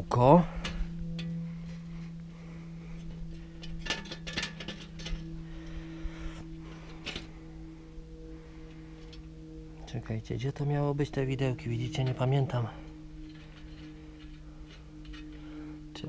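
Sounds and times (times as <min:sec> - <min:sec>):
low hum: 0:00.0 - 0:16.0
metallic clicks and rattles: 0:03.6 - 0:05.3, 0:13.2 - 0:15.4.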